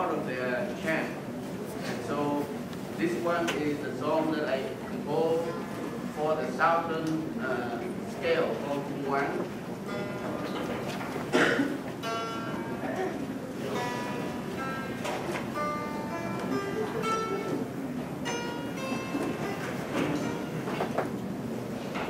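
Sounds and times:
plucked zither melody: 0:09.8 - 0:22.0.

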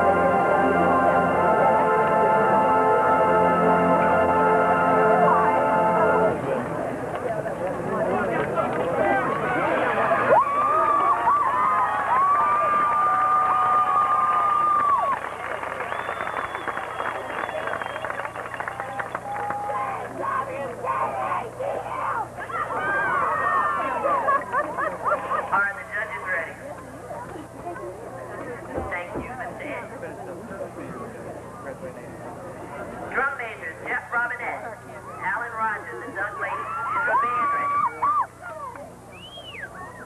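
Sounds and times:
marching band held chord: 0:00.0 - 0:06.8
crowd chatter: 0:00.0 - 0:40.0.

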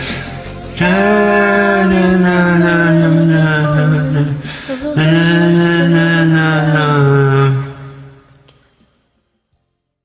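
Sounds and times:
person singing a long note: 0:00.8 - 0:08.4.

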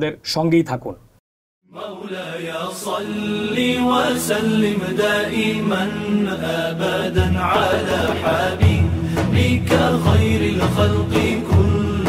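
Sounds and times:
chanted devotional vocal: 0:01.7 - 0:12.0.

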